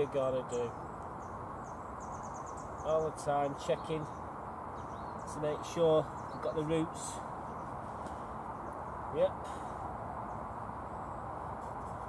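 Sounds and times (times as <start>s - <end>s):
small bird twittering: 0.0s - 9.6s
outdoor background noise: 0.0s - 12.0s.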